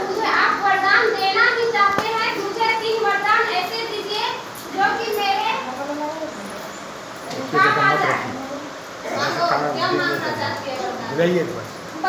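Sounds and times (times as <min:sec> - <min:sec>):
chatter of high-pitched voices: 0:00.0 - 0:06.7.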